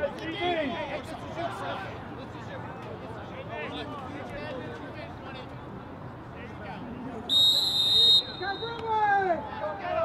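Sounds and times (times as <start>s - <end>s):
referee's whistle blast: 7.3s - 8.8s.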